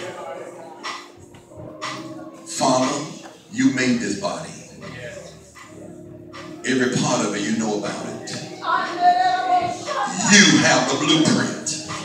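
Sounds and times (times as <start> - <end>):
murmured voices praying: 0.0 - 12.0.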